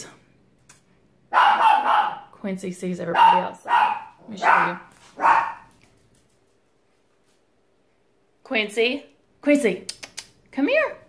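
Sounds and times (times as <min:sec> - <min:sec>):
dog barking: 0:01.3 - 0:02.3, 0:03.1 - 0:05.7.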